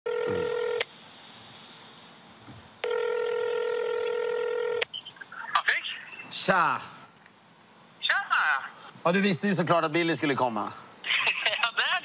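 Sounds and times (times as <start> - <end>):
phone ringback tone: 0.1 - 0.8, 2.8 - 4.8
voice through phone: 0.2 - 0.6.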